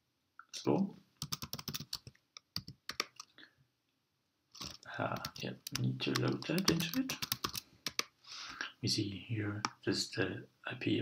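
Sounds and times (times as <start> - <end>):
computer keyboard typing: 1.2 - 3.3, 4.6 - 8.1.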